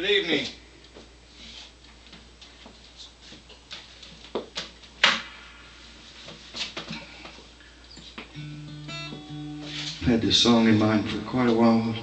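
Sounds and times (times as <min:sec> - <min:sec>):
acoustic guitar being handled: 0:08.1 - 0:10.1.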